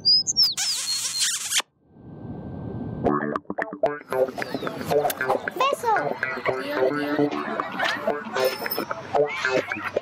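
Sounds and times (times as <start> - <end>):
squeaky whistle-like chirps: 0.0 - 1.7.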